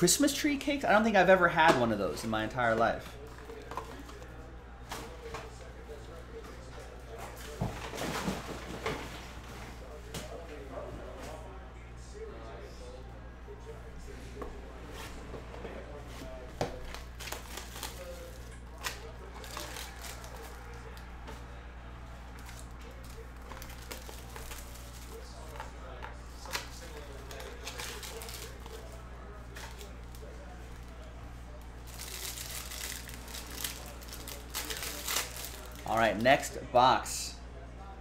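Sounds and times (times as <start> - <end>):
wrapper crinkling and tearing: 16.9 - 21.0, 22.4 - 31.0, 31.8 - 36.1.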